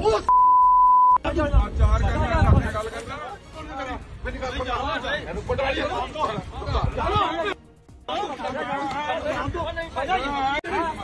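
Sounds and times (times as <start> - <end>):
censor bleep: 0.3 - 1.2.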